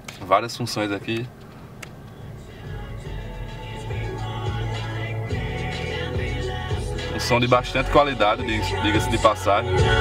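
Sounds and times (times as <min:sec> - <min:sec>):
music from car stereo: 0:01.1 - 0:10.0.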